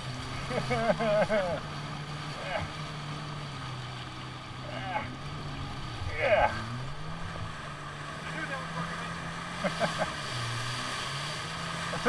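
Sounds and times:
jet ski engine humming: 0:00.0 - 0:12.0
water washing around hull: 0:00.0 - 0:12.0.

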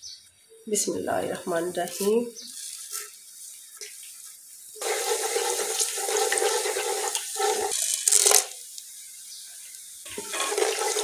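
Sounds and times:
spices sizzling in hot oil: 0:01.1 - 0:11.0.

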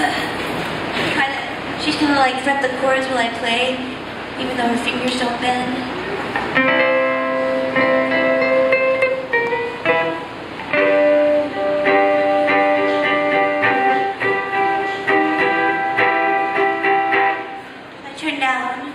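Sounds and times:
guitar playing chords: 0:05.9 - 0:18.0.

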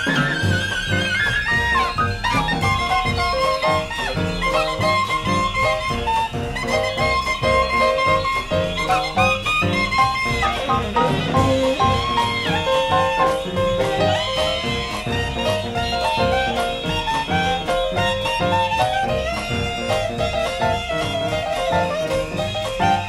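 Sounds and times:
drums keeping a steady beat: 0:00.0 - 0:23.0
piano chords: 0:00.0 - 0:23.0
wind instrument melody: 0:00.0 - 0:23.0.

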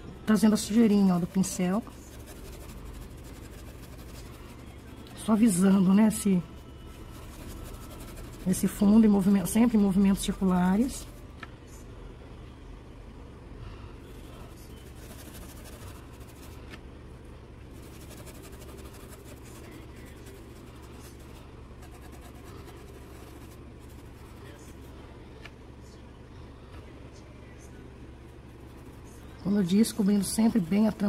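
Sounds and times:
steady low hum: 0:00.0 - 0:31.0
brush scrubbing cloth: 0:00.6 - 0:04.8, 0:07.0 - 0:09.5, 0:14.8 - 0:16.6, 0:17.7 - 0:24.4.

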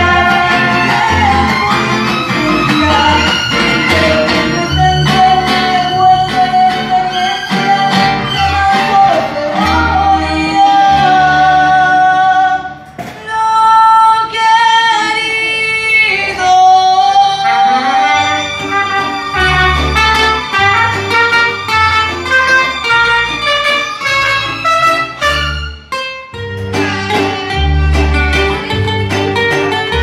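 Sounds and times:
bowed violins: 0:00.0 - 0:10.4, 0:17.2 - 0:26.0
strummed guitars: 0:00.0 - 0:13.3, 0:14.5 - 0:30.0
woman singing: 0:00.0 - 0:19.6
pulsing bass line: 0:26.4 - 0:30.0.

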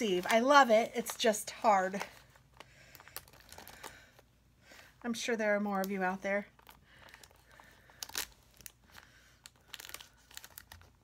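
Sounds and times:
plastic wrapping crinkling: 0:00.0 - 0:04.8, 0:05.7 - 0:11.0.

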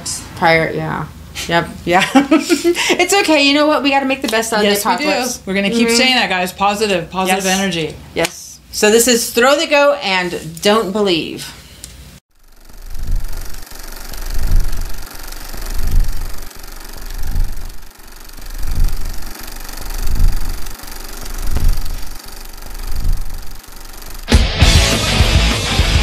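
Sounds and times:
rhythmic throbbing rumble: 0:12.3 - 0:26.0.

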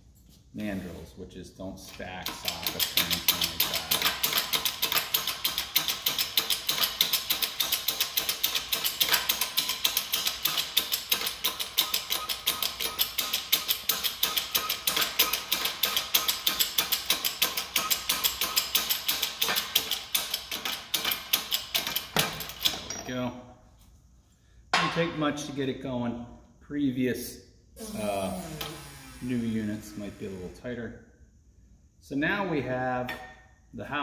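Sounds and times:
shop press pump clicking: 0:02.2 - 0:23.0.

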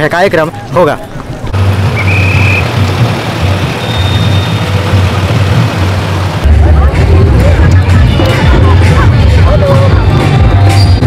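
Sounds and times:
bass-heavy music: 0:01.6 - 0:11.0.

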